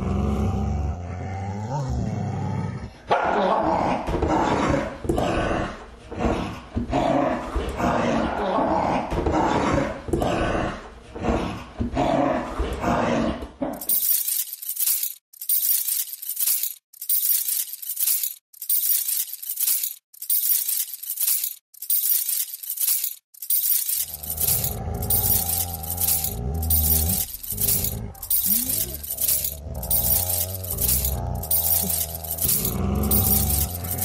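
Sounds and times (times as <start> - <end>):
low growl: 0.0 - 3.0, 24.0 - 34.0
metal chain rattling: 13.8 - 34.0.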